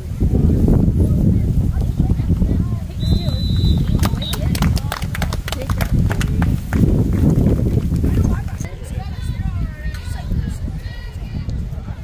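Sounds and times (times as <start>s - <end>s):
referee's whistle blowing: 3.0s - 4.5s
people clapping: 3.4s - 8.6s.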